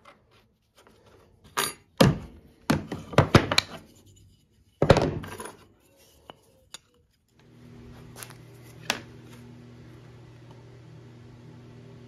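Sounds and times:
tools knocking on wooden workbench: 4.8 - 5.3.

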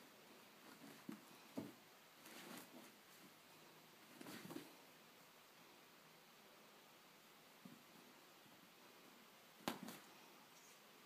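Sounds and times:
cat paws thumping and scuffling: 4.1 - 4.8, 9.6 - 10.1.

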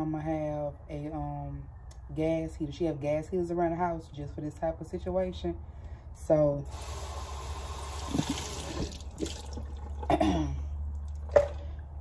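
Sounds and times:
tap running into sink: 8.0 - 10.1
bottles knocking: 11.2 - 11.8.

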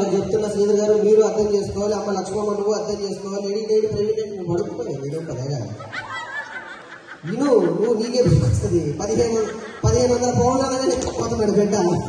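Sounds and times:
person laughing: 5.8 - 10.8.

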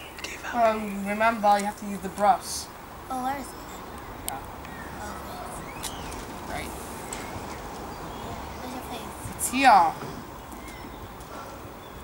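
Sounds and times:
faint bird chirps: 3.1 - 6.3, 10.4 - 12.0.

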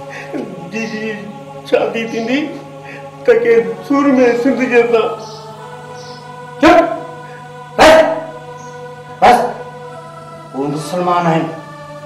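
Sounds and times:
background music sustained notes: 0.0 - 12.0.

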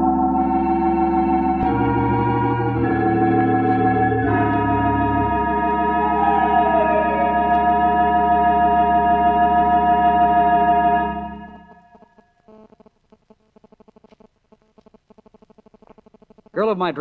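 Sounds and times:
organ chord with tremulant: 0.0 - 12.0.

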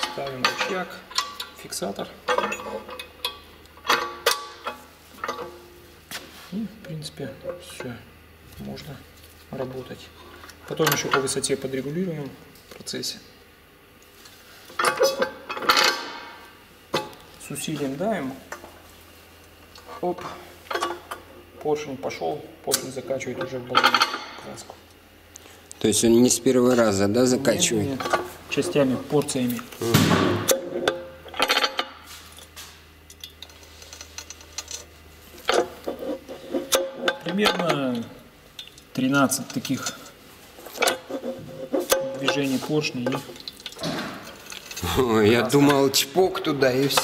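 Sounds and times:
low steady hum: 0.0 - 47.0.

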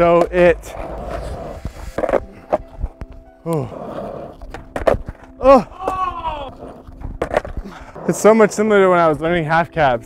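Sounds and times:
skateboard wheels rolling on asphalt: 0.0 - 10.0.

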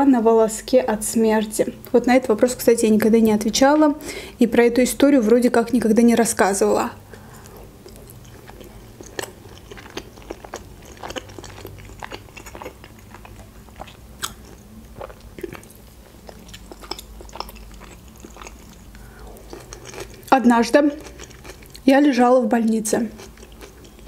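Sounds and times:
chewing mouth clicks: 7.4 - 20.3, 23.2 - 24.0.

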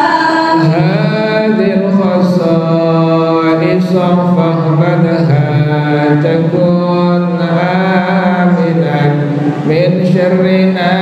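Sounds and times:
man chanting into microphone: 0.5 - 11.0.

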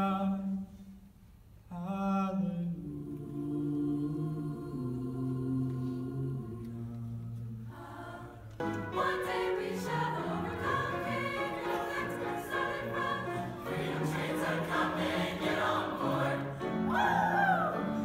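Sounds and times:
mixed choir singing: 2.5 - 18.0.

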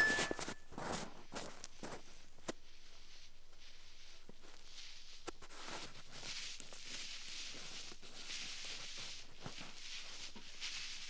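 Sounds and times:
thin high tone: 0.0 - 0.7
ear probe scratching: 0.0 - 11.0.

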